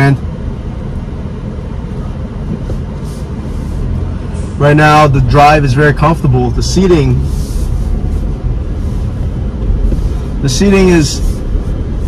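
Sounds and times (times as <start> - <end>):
car driving slowly from inside: 0.0 - 12.0.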